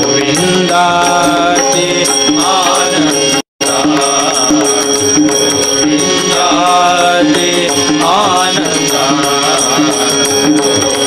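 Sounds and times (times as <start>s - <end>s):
harmonium melody: 0.0s - 11.0s
small hand cymbals ringing: 0.0s - 11.0s
tabla rhythm: 0.0s - 11.0s.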